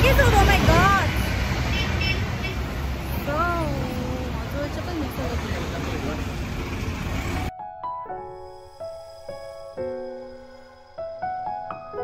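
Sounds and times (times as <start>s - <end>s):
street traffic rumble: 0.0s - 7.5s.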